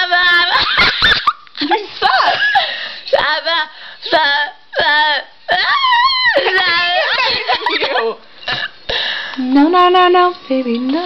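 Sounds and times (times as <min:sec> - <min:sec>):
woman laughing and crying out: 0:05.6 - 0:08.2.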